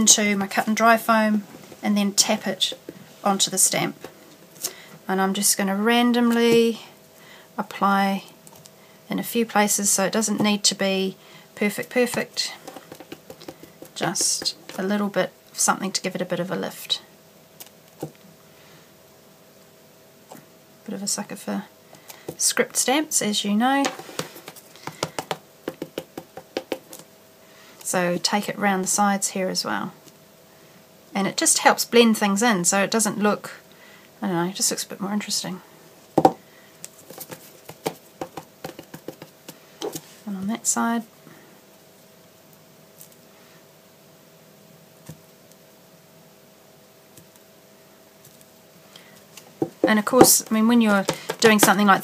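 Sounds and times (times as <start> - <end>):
faint steady hum: 0.0 - 52.0
foam pad tapping on stamp: 24.2 - 26.9, 37.7 - 39.3
rubber stamp taps: 24.8 - 27.0, 51.0 - 51.8.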